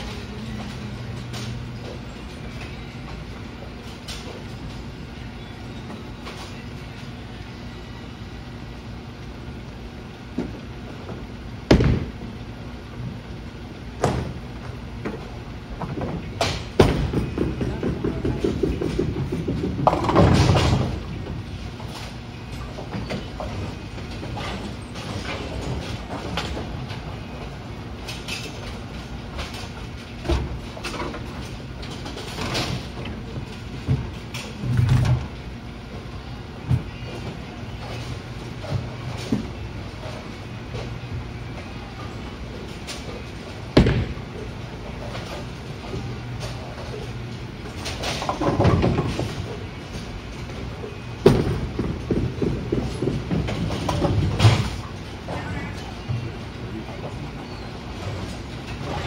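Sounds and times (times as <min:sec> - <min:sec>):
machinery low rumble: 0:00.0 - 0:30.8
bowling pinsetter mechanical hum: 0:00.0 - 0:59.0.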